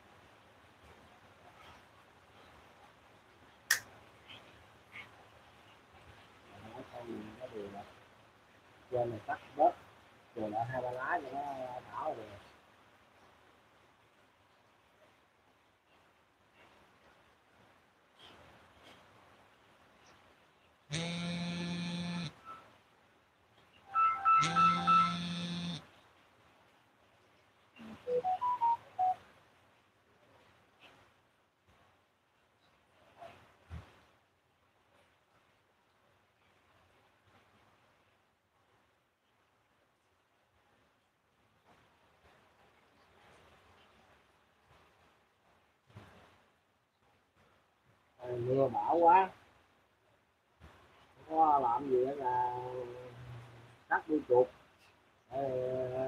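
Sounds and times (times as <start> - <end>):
soft voice-like sound: 6.4 - 8.0, 8.9 - 9.8, 10.4 - 12.5, 27.8 - 29.2, 48.2 - 49.4, 51.2 - 56.0.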